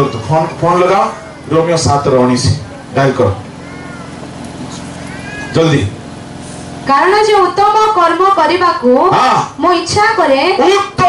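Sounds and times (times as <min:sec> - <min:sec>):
man speaking through microphone: 0:00.0 - 0:03.6, 0:05.5 - 0:06.0
faint high rising calls: 0:02.7 - 0:05.8.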